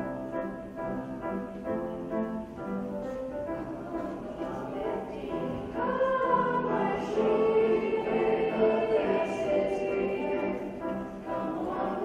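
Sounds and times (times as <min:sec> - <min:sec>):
children's choir singing: 0:03.3 - 0:12.0.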